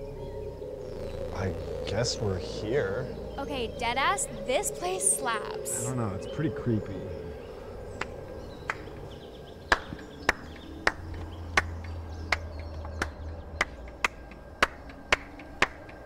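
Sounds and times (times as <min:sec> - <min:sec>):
low steady drone: 0:00.0 - 0:16.0.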